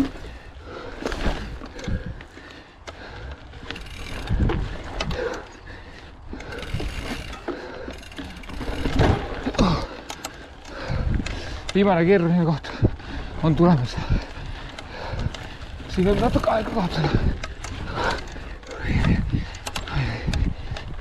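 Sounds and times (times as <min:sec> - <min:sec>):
bike rattling over bumps: 0:00.0 - 0:21.0
bike tyres on dirt: 0:00.0 - 0:21.0
freehub ratcheting: 0:01.0 - 0:05.5, 0:06.3 - 0:12.4, 0:13.9 - 0:21.0
wind rumble on microphone: 0:01.2 - 0:02.4, 0:03.2 - 0:07.5, 0:10.5 - 0:11.9, 0:12.6 - 0:21.0.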